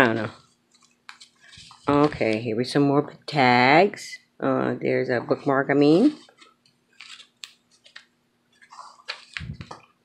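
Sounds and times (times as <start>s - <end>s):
paper pages rustling: 0.0s - 2.5s, 5.4s - 10.0s.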